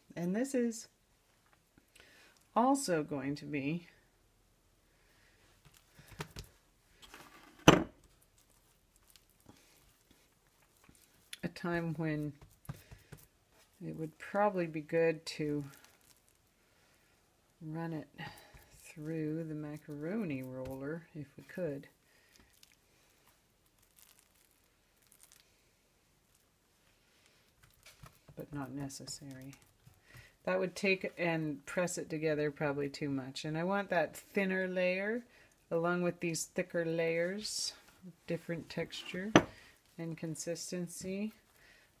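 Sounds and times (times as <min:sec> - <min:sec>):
soft taps and rustles of dough: 0:05.4 - 0:07.3, 0:08.0 - 0:16.5, 0:18.3 - 0:31.2
sharp thump on countertop: 0:39.3 - 0:39.6.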